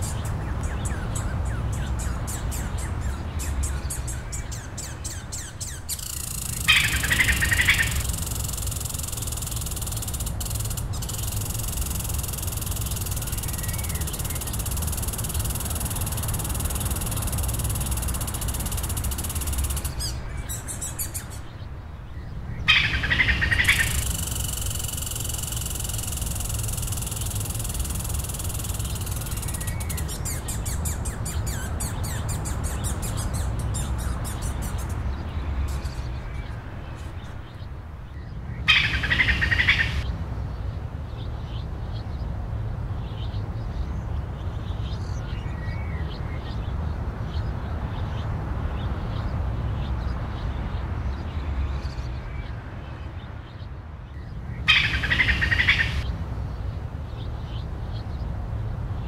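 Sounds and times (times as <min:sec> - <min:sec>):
birds chirping: 0:00.0 - 0:40.1, 0:49.1 - 0:56.1
high steady hiss: 0:05.9 - 0:21.9, 0:23.4 - 0:30.8.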